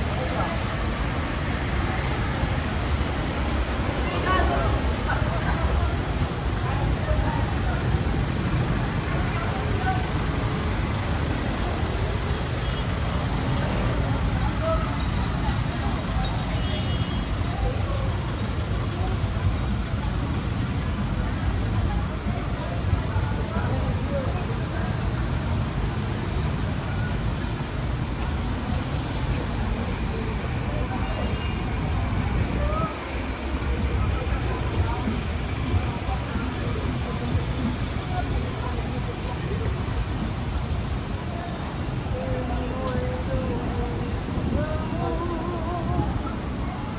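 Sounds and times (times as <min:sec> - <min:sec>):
car engines rumbling: 0:00.0 - 0:46.9
voices of people walking by: 0:00.0 - 0:46.9.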